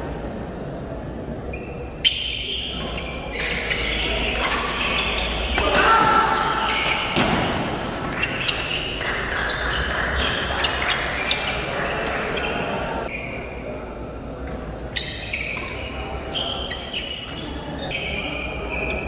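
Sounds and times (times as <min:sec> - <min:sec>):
crowd talking and shouting: 0:00.0 - 0:19.0.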